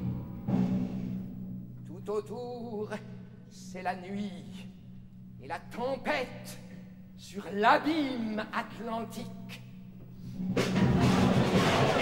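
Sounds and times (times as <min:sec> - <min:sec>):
timpani and percussion: 0:00.0 - 0:01.8, 0:10.4 - 0:12.0
orchestra playing storm music: 0:10.6 - 0:12.0.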